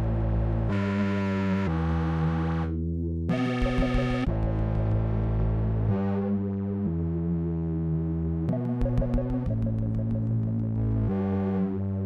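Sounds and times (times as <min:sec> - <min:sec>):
deep sustained bass: 0:00.0 - 0:12.0.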